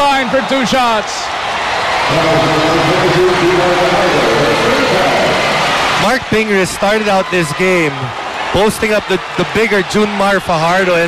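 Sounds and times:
crowd roaring and cheering: 0:00.0 - 0:11.0.

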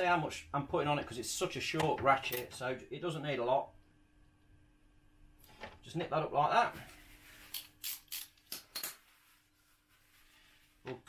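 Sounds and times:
paper towel rustling: 0:06.6 - 0:07.5, 0:09.0 - 0:10.9.

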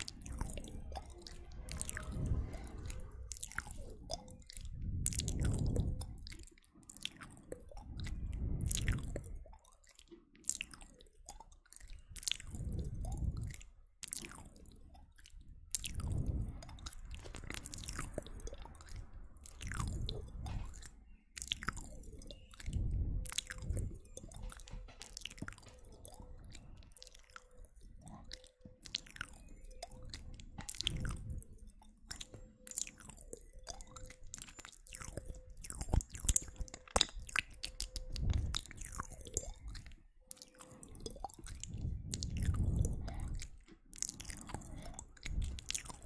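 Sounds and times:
wet mouth clicks and pops: 0:00.0 - 0:46.0
deep muffled swells: 0:00.1 - 0:06.2.

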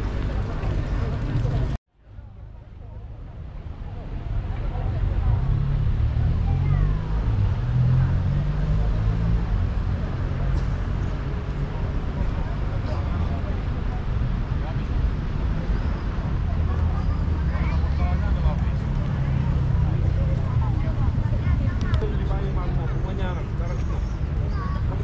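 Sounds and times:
indistinct voices of passers-by: 0:00.0 - 0:25.0
low rumble of road traffic: 0:00.0 - 0:25.0.

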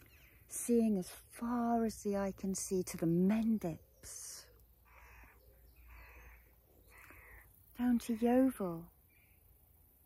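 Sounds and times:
crow cawing: 0:04.9 - 0:07.4.

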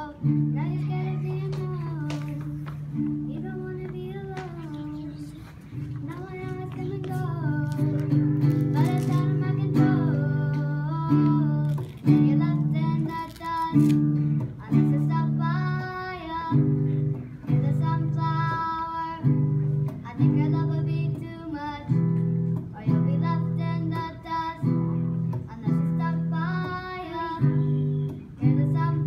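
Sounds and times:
acoustic guitar strumming: 0:00.0 - 0:29.0
child singing: 0:00.0 - 0:29.0.

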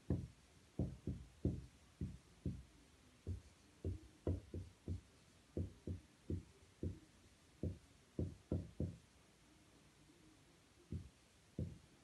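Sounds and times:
marker writing on whiteboard: 0:00.1 - 0:07.0.

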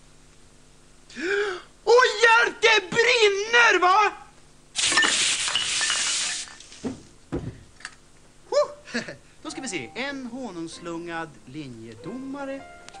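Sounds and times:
liquid spray hissing: 0:04.8 - 0:06.8
dull thumps: 0:06.8 - 0:07.8.

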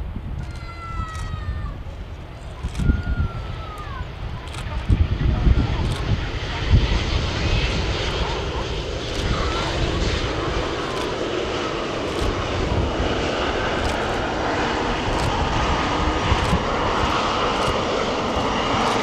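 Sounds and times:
jet engines roaring: 0:00.1 - 0:19.0
faint high engine whine: 0:00.6 - 0:19.0.

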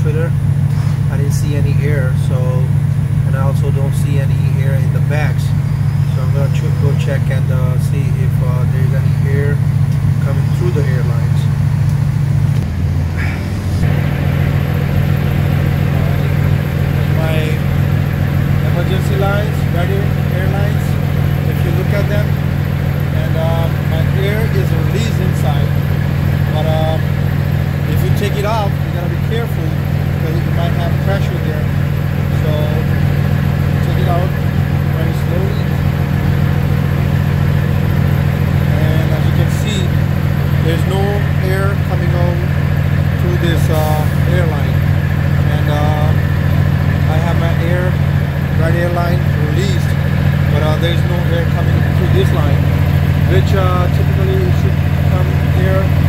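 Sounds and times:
diesel truck engine idling: 0:00.0 - 0:56.0
faint voices: 0:15.8 - 0:17.8.

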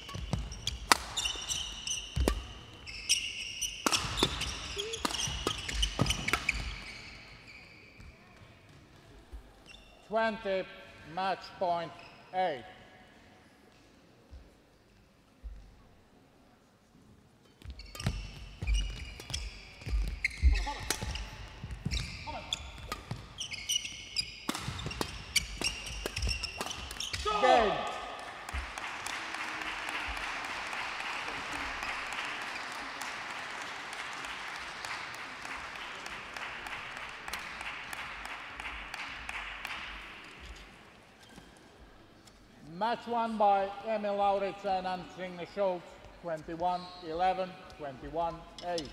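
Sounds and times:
racket hitting shuttlecock: 0:00.0 - 0:07.0, 0:17.6 - 0:28.8
shoes squeaking on court: 0:00.0 - 0:10.1, 0:17.5 - 0:27.7, 0:40.3 - 0:42.5, 0:46.0 - 0:47.8
player shouting: 0:27.2 - 0:28.2
audience applause: 0:27.6 - 0:39.8.

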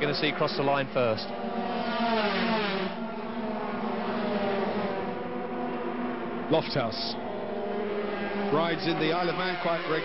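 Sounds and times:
racing motorcycles engines: 0:00.0 - 0:10.0.

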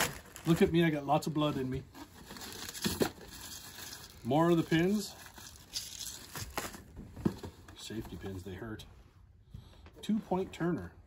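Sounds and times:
plastic packaging crinkling: 0:00.0 - 0:07.0.

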